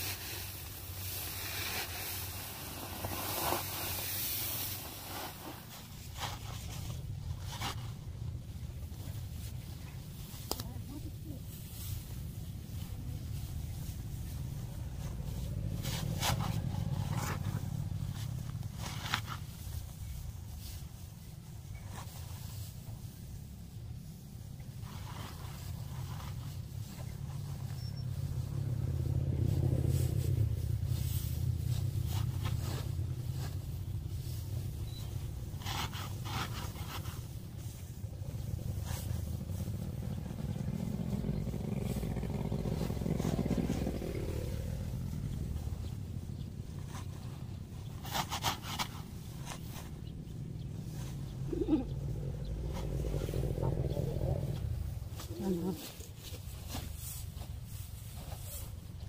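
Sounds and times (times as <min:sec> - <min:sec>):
dry straw rustling and crunching: 0:00.0 - 0:59.0
low steady rumble: 0:00.0 - 0:59.0.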